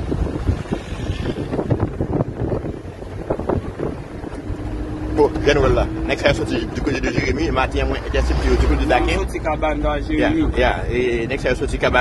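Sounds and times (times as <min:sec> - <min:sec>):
vehicle rumble: 0:00.0 - 0:12.0
wind buffeting microphone: 0:00.0 - 0:12.0
man speaking: 0:05.2 - 0:12.0.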